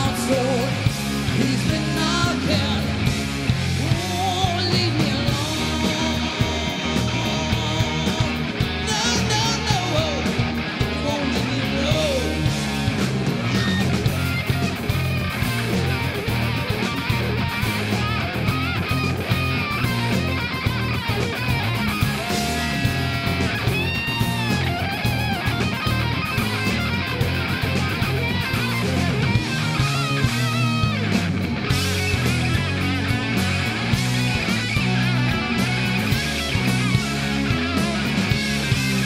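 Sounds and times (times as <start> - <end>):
rock band playing: 0.0 - 39.0
electric guitar solo: 2.2 - 39.0.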